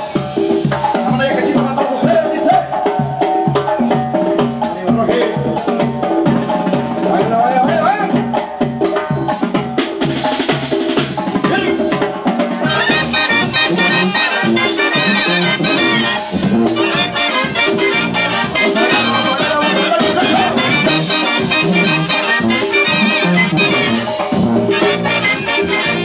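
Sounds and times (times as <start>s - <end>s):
brass band playing live: 0.0s - 26.0s.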